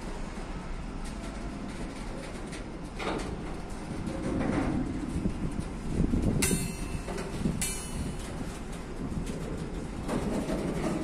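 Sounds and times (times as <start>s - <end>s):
train wheels rumbling and knocking: 0.0s - 11.0s.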